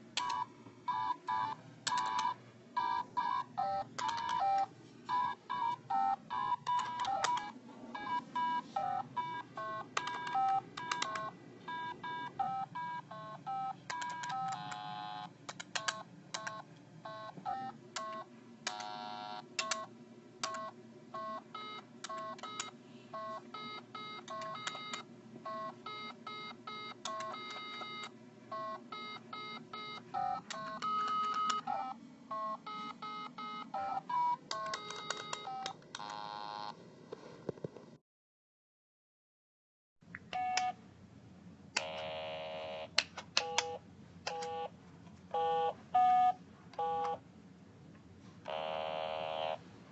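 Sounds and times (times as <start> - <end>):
electronic toy beeping tones: 0.2 - 36.7, 45.3 - 47.2.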